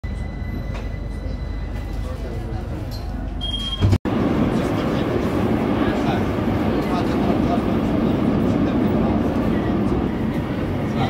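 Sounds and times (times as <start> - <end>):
low rumble of train: 0.0 - 11.0.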